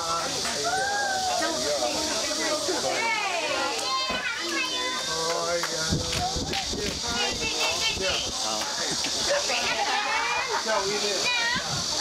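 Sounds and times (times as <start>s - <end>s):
adult voices: 0.0s - 12.0s
high-pitched hiss: 0.0s - 12.0s
children shouting: 0.5s - 5.6s, 9.5s - 10.6s.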